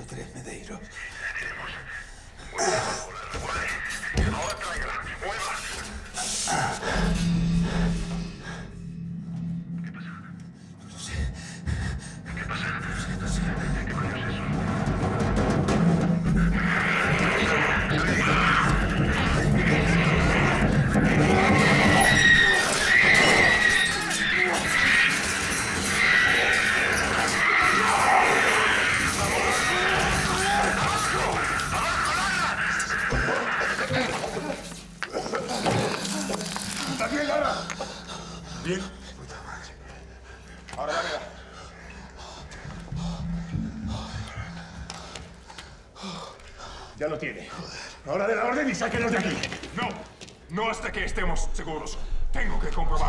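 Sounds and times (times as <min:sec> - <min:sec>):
shrill chaotic din with squealing: 0:14.6 - 0:38.0
shouted voices: 0:16.3 - 0:37.6.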